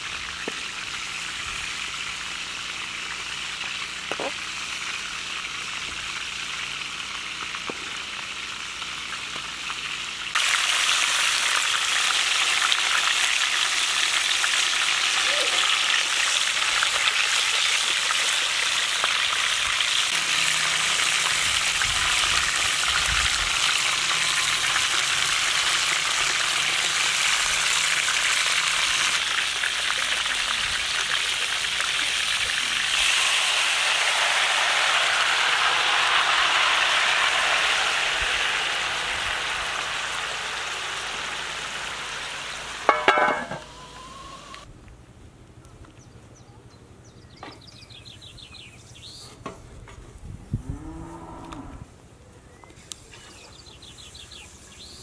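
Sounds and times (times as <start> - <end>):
chicken sizzling in hot oil: 0.0 - 44.7.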